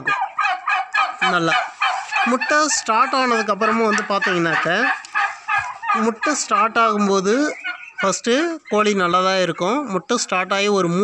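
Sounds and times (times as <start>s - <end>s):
turkeys gobbling: 0.0s - 11.0s.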